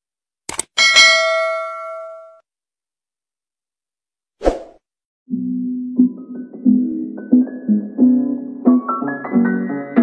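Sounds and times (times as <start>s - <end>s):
bright bell ding: 0.8s - 2.4s.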